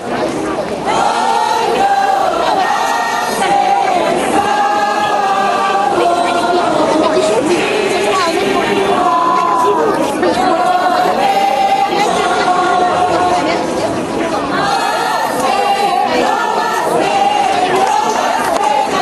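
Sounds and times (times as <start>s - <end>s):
crowd chatter: 0.0s - 19.0s
people singing held notes: 0.0s - 19.0s.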